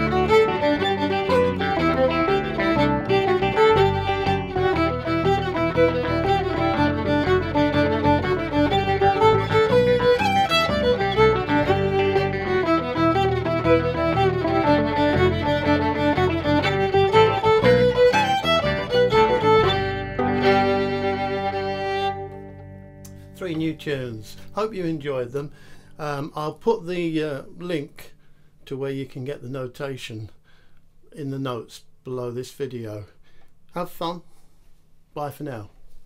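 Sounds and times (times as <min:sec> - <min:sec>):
solo fiddle playing a jig: 0:00.0 - 0:26.5.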